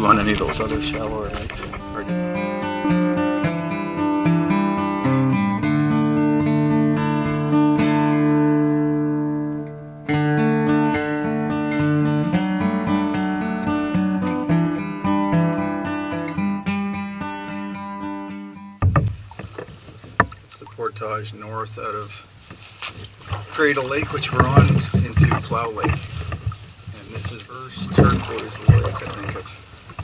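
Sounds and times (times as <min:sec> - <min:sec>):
plucked acoustic guitar music: 0:00.0 - 0:30.0
sharp knocks: 0:18.8 - 0:20.4, 0:24.0 - 0:26.6, 0:27.2 - 0:29.2.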